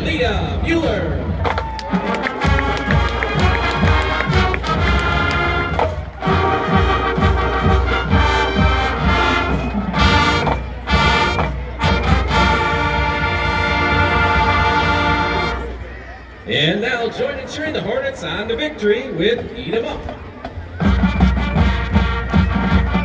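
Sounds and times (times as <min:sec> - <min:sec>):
marching band brass chords: 0:00.0 - 0:23.0.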